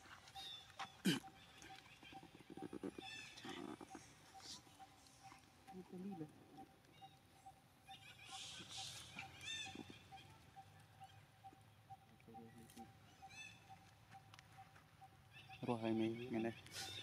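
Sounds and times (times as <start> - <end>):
high-pitched animal squeaks: 2.0 - 5.4, 7.9 - 11.6.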